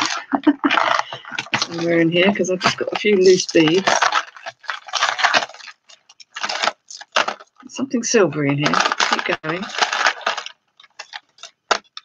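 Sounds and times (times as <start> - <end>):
jewellery and beads clinking: 0.0 - 12.0.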